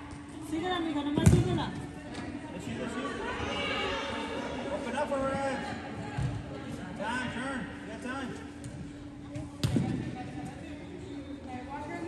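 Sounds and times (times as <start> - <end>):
steady low hum: 0.0 - 12.0
ball being kicked thud: 1.2 - 1.6, 9.6 - 10.1.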